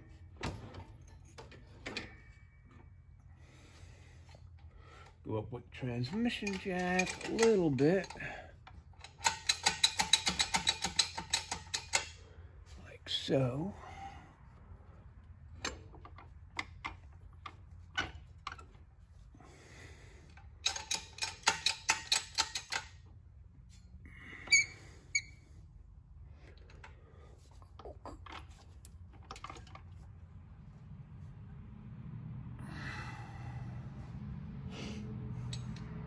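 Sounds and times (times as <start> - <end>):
metallic clicks and taps: 6.4 - 12.1, 20.6 - 22.9, 35.4 - 36.0.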